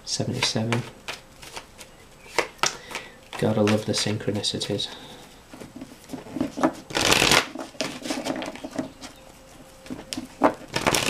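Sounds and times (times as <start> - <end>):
cards being shuffled: 0.3 - 4.8, 5.6 - 9.2, 9.8 - 11.0.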